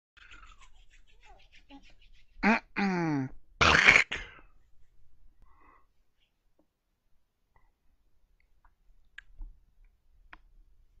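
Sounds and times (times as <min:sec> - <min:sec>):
man humming: 0:02.4 - 0:03.4.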